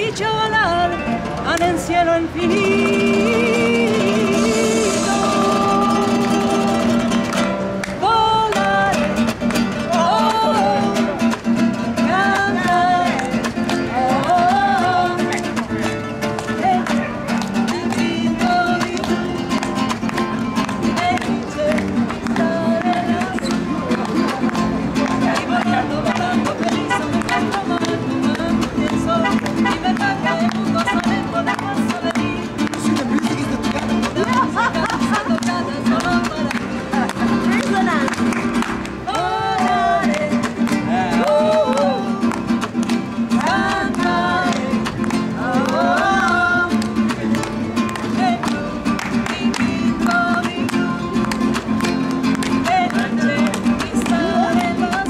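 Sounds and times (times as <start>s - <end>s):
person singing: 0.0s - 7.4s, 12.0s - 19.9s, 39.0s - 51.6s, 52.3s - 55.0s
nylon-string guitar strummed: 0.0s - 55.0s.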